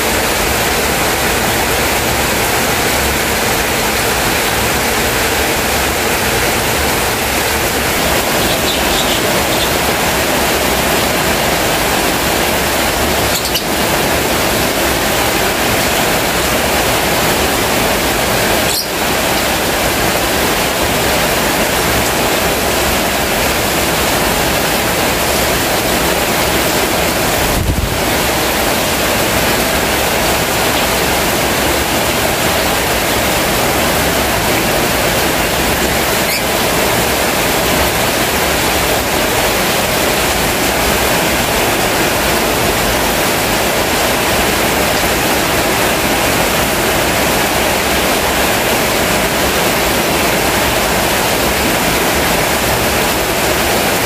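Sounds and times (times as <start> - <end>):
heavy rain pouring: 0.0 - 54.0.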